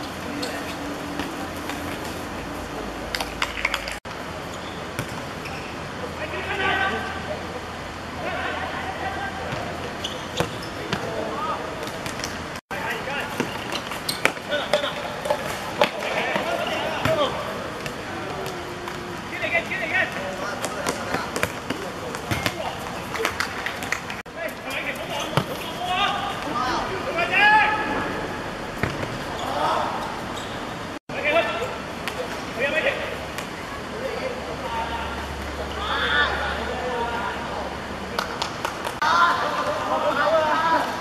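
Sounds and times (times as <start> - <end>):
steady background noise: 0.0 - 41.0
players calling out: 12.7 - 38.3
football kicked on hard court: 28.8 - 29.2.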